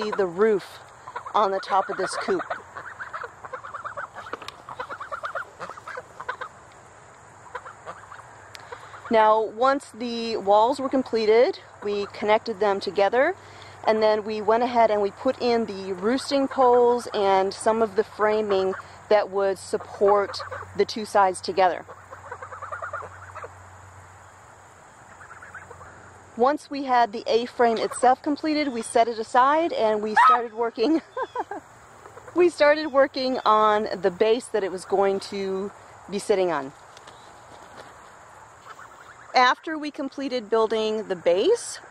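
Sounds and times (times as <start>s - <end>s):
chickens clucking: 0.0s - 6.8s.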